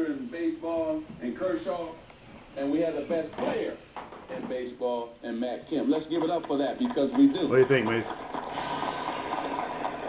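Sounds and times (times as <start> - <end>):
crowd applauding through radio: 5.8 - 10.0.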